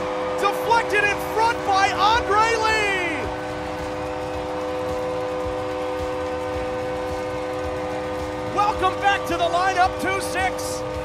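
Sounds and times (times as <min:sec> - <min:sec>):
arena goal horn: 0:00.0 - 0:11.0.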